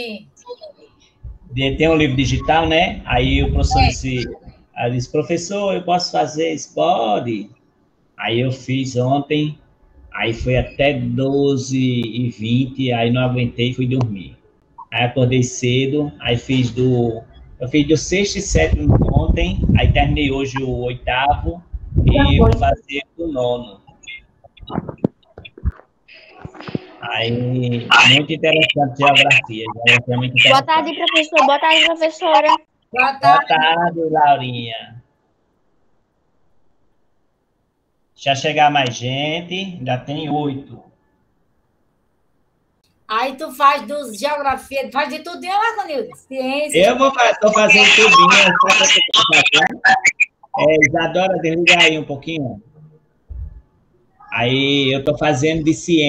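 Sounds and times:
garbled voices over video call: 0:00.0 - 0:07.5, 0:08.2 - 0:35.1, 0:38.3 - 0:40.9, 0:43.1 - 0:53.5, 0:54.1 - 0:56.0
person whispering: 0:03.4 - 0:04.6, 0:24.1 - 0:31.9, 0:33.2 - 0:33.7, 0:46.7 - 0:51.0.

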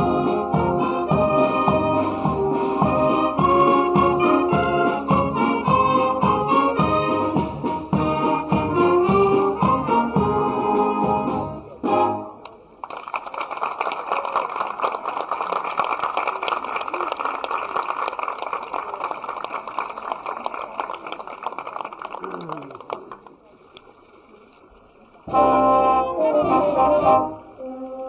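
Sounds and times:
wind band playing: 0:00.0 - 0:12.5, 0:25.3 - 0:28.0
audience applause: 0:12.8 - 0:23.5.

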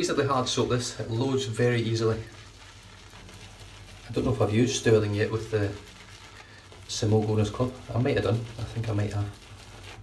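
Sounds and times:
shaving brush scrubbing soap: 0:00.0 - 0:10.0.

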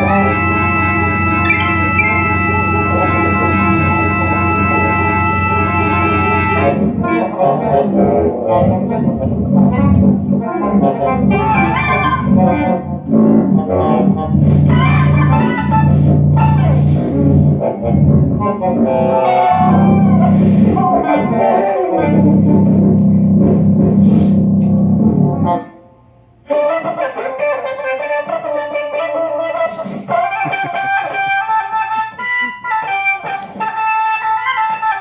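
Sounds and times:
improvised electronic music: 0:00.0 - 0:25.7
synthesizer organ chord: 0:00.0 - 0:26.2.

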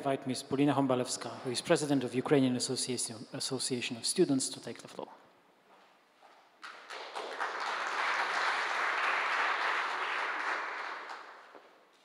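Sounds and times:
audience applauding: 0:06.6 - 0:11.8.

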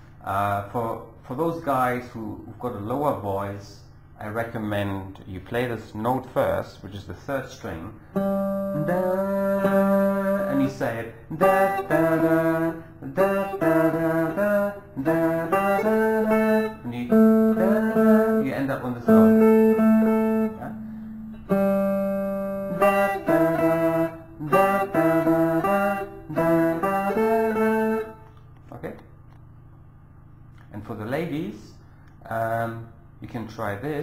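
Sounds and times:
guitar melody: 0:08.2 - 0:28.4
man singing: 0:08.8 - 0:19.9, 0:22.7 - 0:26.0.

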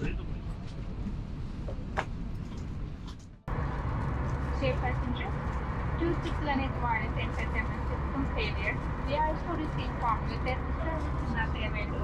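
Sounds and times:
airliner cabin drone: 0:00.0 - 0:12.0.

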